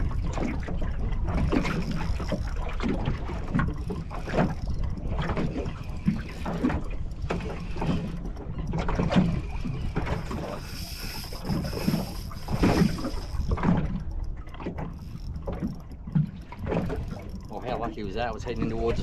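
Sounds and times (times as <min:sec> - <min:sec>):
wind on microphone: 0:00.0 - 0:14.1
water slapping against boat hull: 0:00.0 - 0:19.0.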